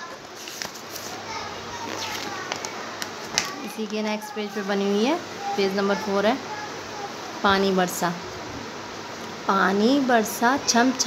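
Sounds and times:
faint children's voices: 0.0s - 8.8s, 9.8s - 11.0s
room noise: 0.0s - 11.0s.

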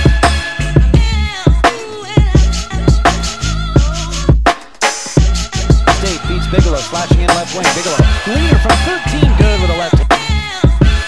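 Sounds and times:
rapping over heavy bass beat: 5.2s - 11.0s.

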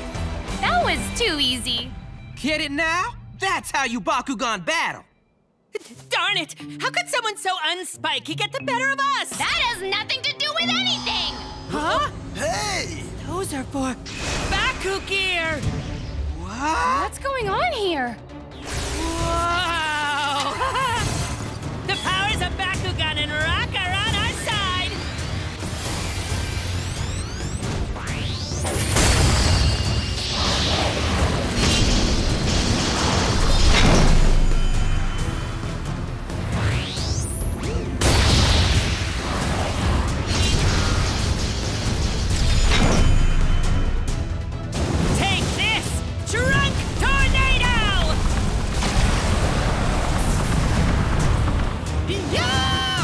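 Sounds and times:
cartoon action music: 0.0s - 4.3s, 8.3s - 53.0s.

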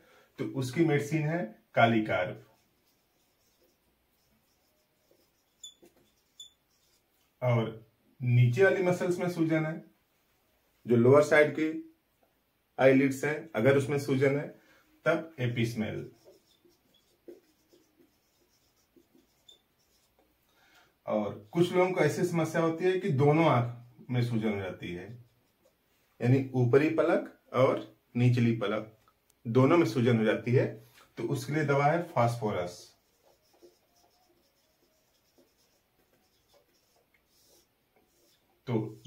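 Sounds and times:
marker pen writing on whiteboard: 2.0s - 7.4s, 15.4s - 20.4s, 24.8s - 25.8s, 31.4s - 39.0s.

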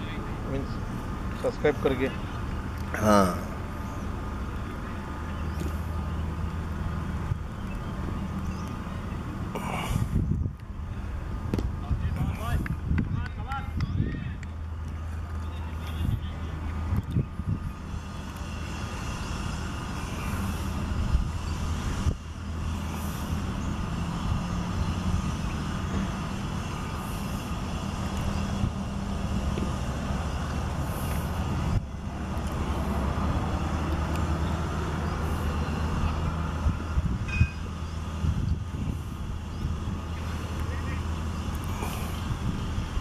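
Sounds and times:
large engine humming: 0.0s - 43.0s.

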